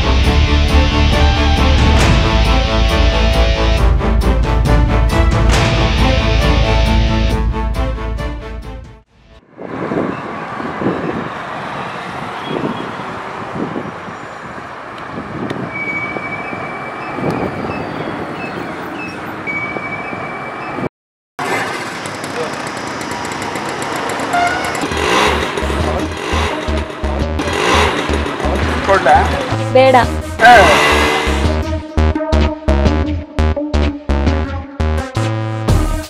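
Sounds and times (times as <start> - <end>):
road traffic: 0.0 - 7.8, 9.1 - 32.0
bus passing: 9.4 - 31.6
motorcycle engine putter: 21.4 - 29.5.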